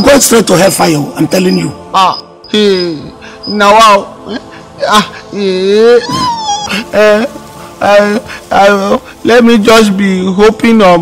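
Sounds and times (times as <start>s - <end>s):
man moaning and whimpering: 2.0s - 9.2s.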